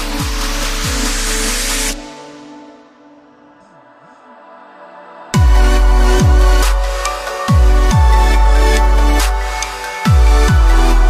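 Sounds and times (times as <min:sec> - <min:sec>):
electronic dance music: 0:00.0 - 0:03.2, 0:05.0 - 0:11.0.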